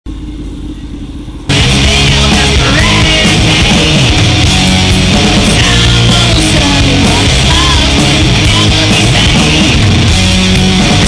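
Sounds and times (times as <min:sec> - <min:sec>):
motorcycle engine rumbling: 0:00.1 - 0:11.0
loud rock music with guitar: 0:01.5 - 0:11.0.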